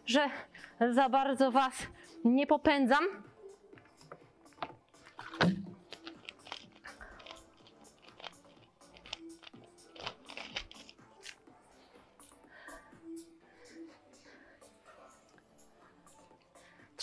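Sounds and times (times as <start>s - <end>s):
faint background music: 0.0s - 17.0s
plastic bottle crackling: 4.6s - 11.4s.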